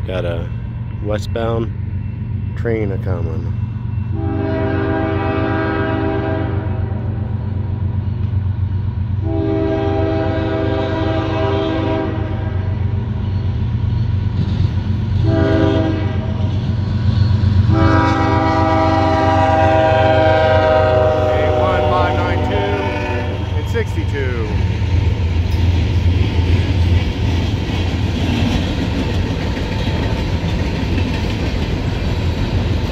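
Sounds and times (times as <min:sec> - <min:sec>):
locomotive air horn blasts: 0:04.1 - 0:07.0, 0:09.2 - 0:12.8, 0:15.2 - 0:16.4, 0:17.6 - 0:23.7.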